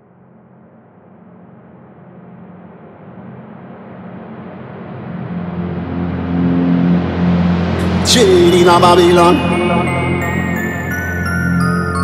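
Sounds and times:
low sustained synth tones: 0:07.0 - 0:12.0.

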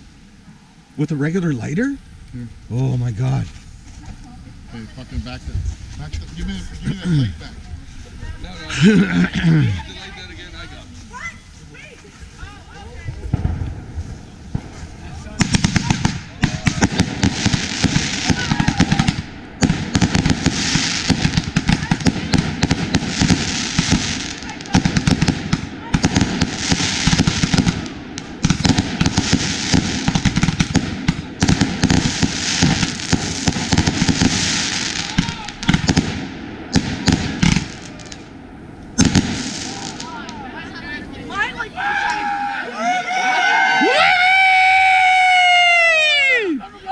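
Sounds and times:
fireworks launches and bursts: 0:07.5 - 0:41.5.

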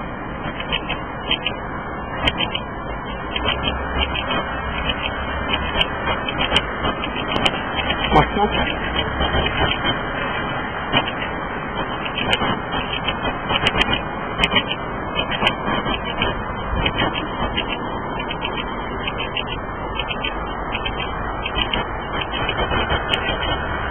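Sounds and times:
city street traffic: 0:00.0 - 0:23.9.

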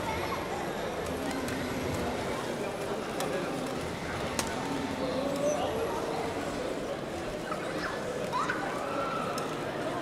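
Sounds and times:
murmur of distant voices: 0:00.0 - 0:10.0.

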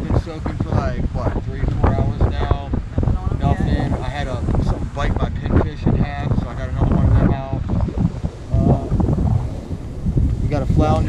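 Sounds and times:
man's voice: 0:00.0 - 0:07.7, 0:08.5 - 0:09.1, 0:10.4 - 0:11.0
wind buffeting microphone: 0:00.0 - 0:11.0.

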